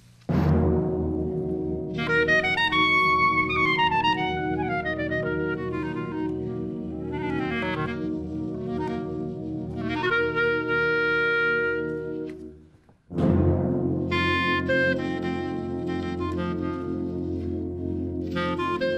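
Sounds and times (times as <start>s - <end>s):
wind band low chords: 0.3s - 18.9s
solo clarinet: 1.9s - 12.7s, 14.0s - 18.9s.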